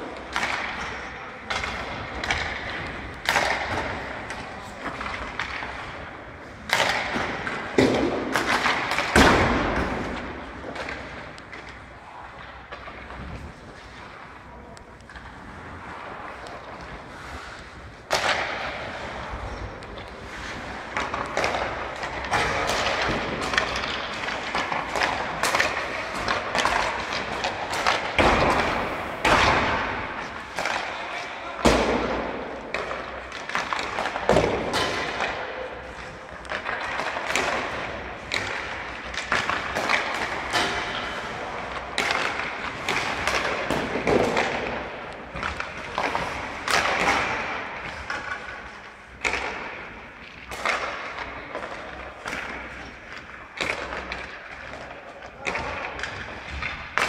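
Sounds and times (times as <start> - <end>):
pucks hitting boards: 0.0 - 14.3, 15.1 - 57.0
players' voices: 0.0 - 56.9
sticks striking pucks: 0.0 - 57.0.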